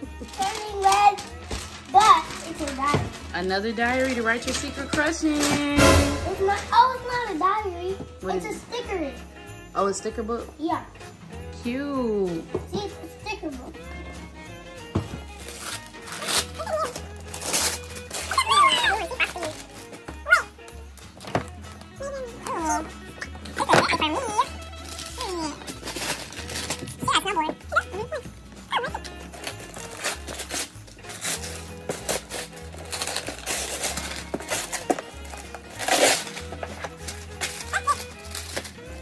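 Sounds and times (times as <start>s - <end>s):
background music: 0.0s - 39.0s
dog yipping and whining: 20.2s - 20.5s, 27.7s - 29.1s
small dog yipping: 20.2s - 20.5s.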